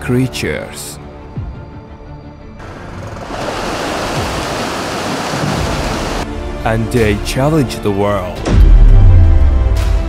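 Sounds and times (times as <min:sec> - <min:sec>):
fish splashing in river: 0:02.9 - 0:06.2.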